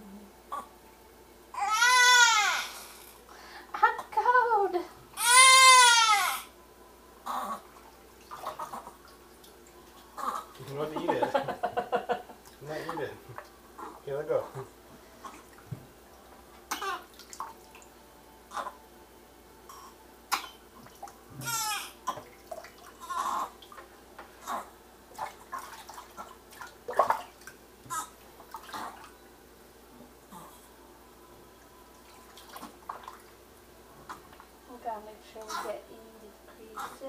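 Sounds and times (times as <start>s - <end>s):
water splashing in sink: 25.1s - 27.6s, 32.3s - 33.4s.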